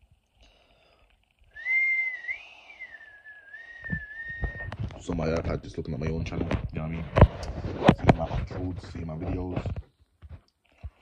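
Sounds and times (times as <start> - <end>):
person whistling a long note: 1.5 - 4.8.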